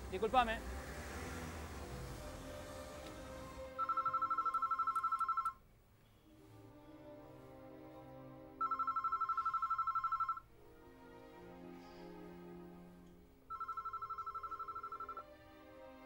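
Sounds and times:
soft background music: 0:00.0 - 0:05.5, 0:06.1 - 0:16.0
electric bell ringing: 0:03.8 - 0:05.5, 0:08.6 - 0:10.4, 0:13.5 - 0:15.2.

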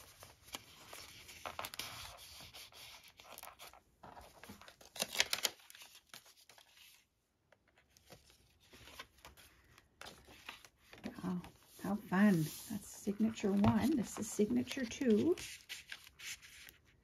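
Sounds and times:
paper pages rustling: 0:00.0 - 0:17.0.

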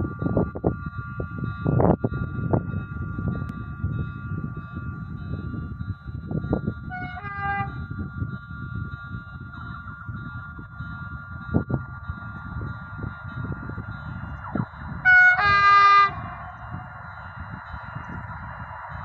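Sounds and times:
wind buffeting microphone: 0:00.0 - 0:19.0
locomotive horn two notes: 0:06.9 - 0:07.8, 0:15.0 - 0:16.6.

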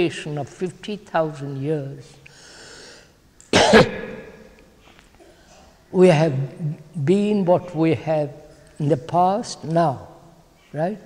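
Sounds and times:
person coughing: 0:03.5 - 0:04.5.

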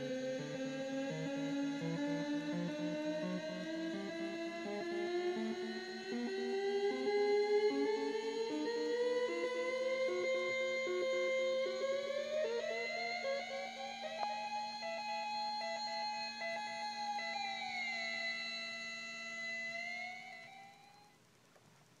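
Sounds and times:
buzzy electronic synth tone: 0:00.0 - 0:12.6.

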